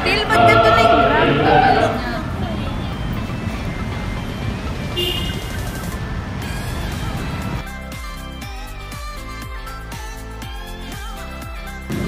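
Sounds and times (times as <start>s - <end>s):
high tone: 0.0s - 2.4s
faint voices: 0.0s - 3.2s
traffic and street noise: 0.0s - 7.6s.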